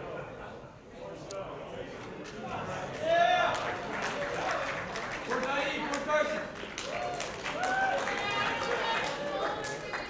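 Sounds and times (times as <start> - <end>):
voices in a crowded room: 0.0 - 10.0.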